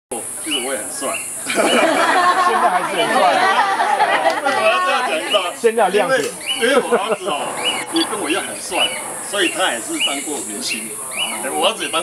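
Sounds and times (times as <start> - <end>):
group of people chattering: 0.1 - 12.0.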